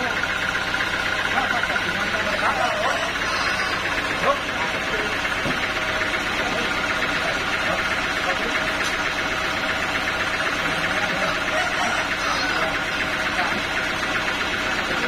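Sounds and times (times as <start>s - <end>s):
band saw machinery running: 0.0s - 15.0s.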